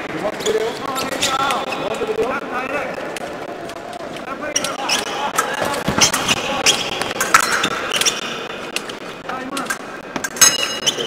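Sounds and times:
shoes squeaking and stamping: 4.6s - 8.3s.

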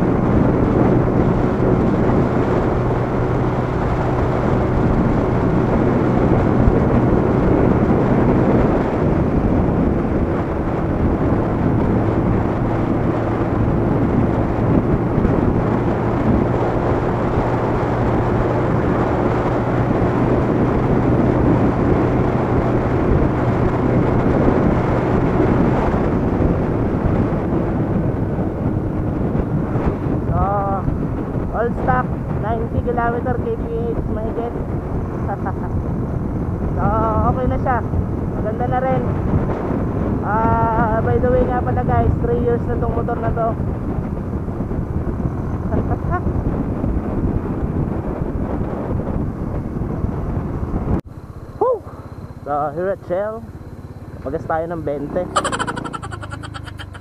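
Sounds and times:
motorcycle engine running: 0.0s - 33.2s, 43.7s - 57.0s
wind and road noise: 0.0s - 57.0s.

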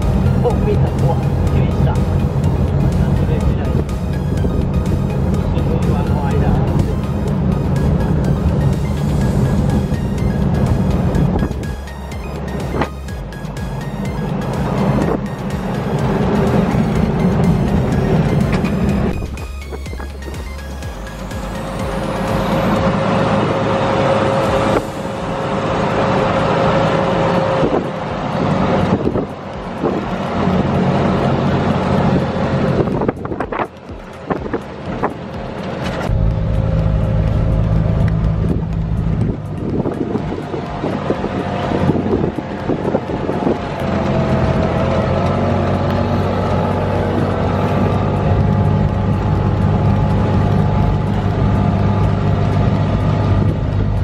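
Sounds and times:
vehicle engine pulling uphill: 0.0s - 54.0s.

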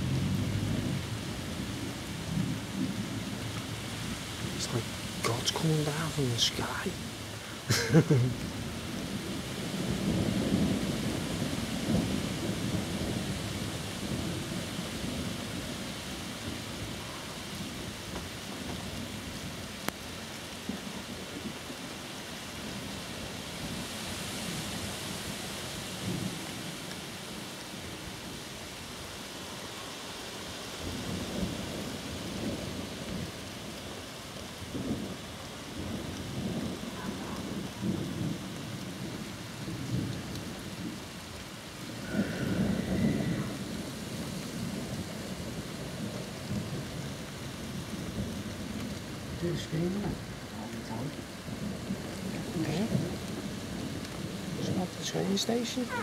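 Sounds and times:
rolling thunder: 0.0s - 6.3s, 7.0s - 19.7s, 34.6s - 41.2s, 41.8s - 56.0s
steady rain hissing: 0.0s - 56.0s.

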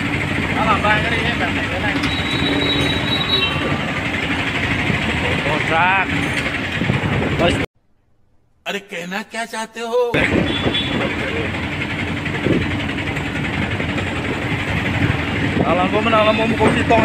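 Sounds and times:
street traffic: 0.0s - 7.7s, 10.2s - 17.0s
truck engine and road noise: 0.0s - 7.7s, 10.2s - 17.0s.

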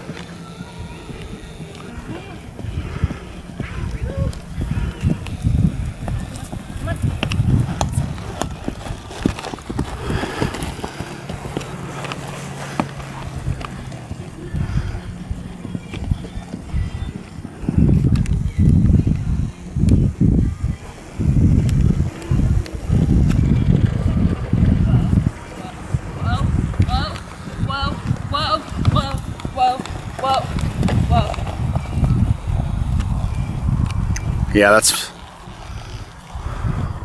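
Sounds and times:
hoofbeats on grass: 0.0s - 34.4s.

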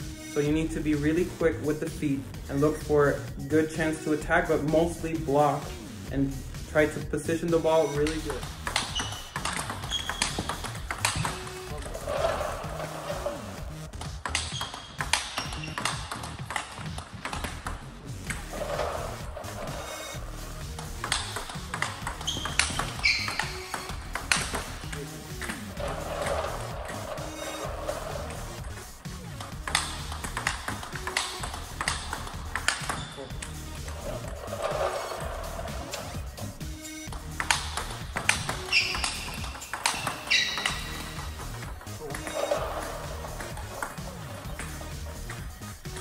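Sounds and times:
background music with beat: 0.0s - 46.0s
ping pong ball hitting bat: 7.7s - 36.2s, 37.0s - 46.0s
ball bouncing on table: 7.9s - 20.2s, 20.8s - 28.8s, 29.4s - 36.2s, 37.0s - 46.0s.

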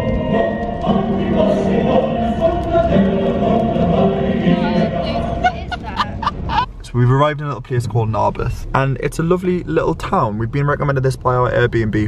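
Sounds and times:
man laughing: 5.4s - 6.7s.

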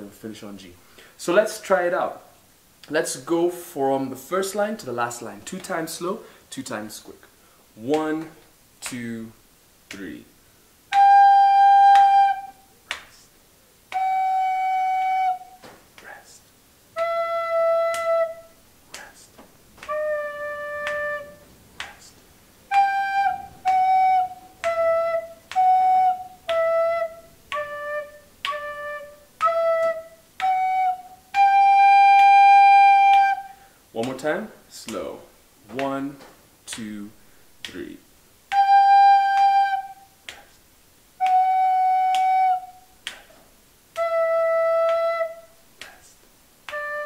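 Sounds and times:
recorder playing slow melody: 10.9s - 12.6s, 13.9s - 15.6s, 17.0s - 18.5s, 19.8s - 21.5s, 22.7s - 33.5s, 38.5s - 40.1s, 41.2s - 42.8s, 44.0s - 45.5s, 46.7s - 47.0s.

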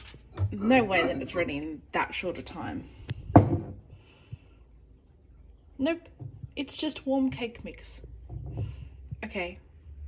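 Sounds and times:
mug knocking on hard surface: 3.2s - 3.8s, 8.2s - 8.9s.

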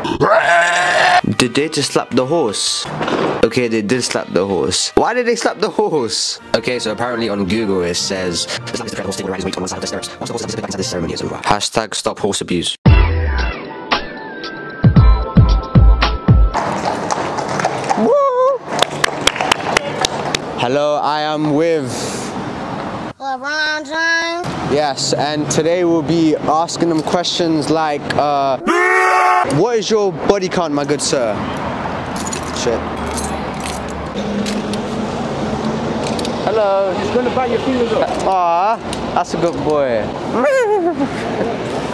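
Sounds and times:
low hum of traffic: 0.0s - 12.7s, 16.5s - 41.9s
outdoor street noise: 0.0s - 41.9s
hip-hop music with deep bass: 12.9s - 16.5s
horse hooves clip-clopping on pavement: 16.6s - 20.4s
metallic jangling of reins: 32.1s - 34.6s.

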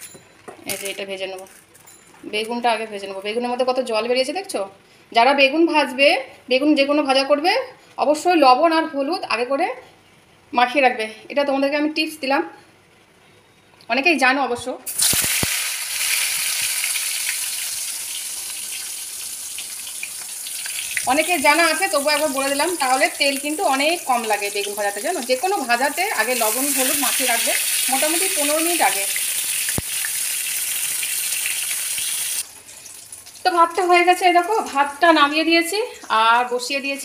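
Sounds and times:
slices sizzling in hot oil: 14.9s - 34.6s.

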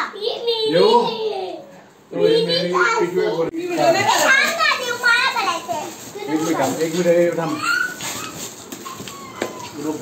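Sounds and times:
foil gift wrap tearing: 3.6s - 10.0s.

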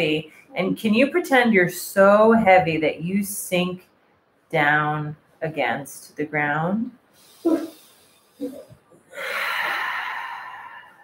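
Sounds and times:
long breathy sigh: 9.1s - 11.0s.

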